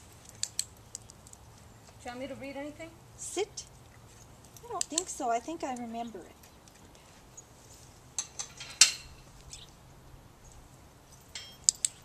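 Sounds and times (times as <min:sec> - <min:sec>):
metal gate latch clinking: 0:08.2 - 0:09.6, 0:11.2 - 0:12.0.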